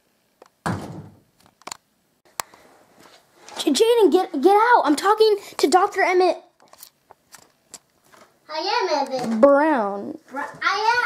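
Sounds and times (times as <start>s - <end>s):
door thumping: 0.6s - 1.3s.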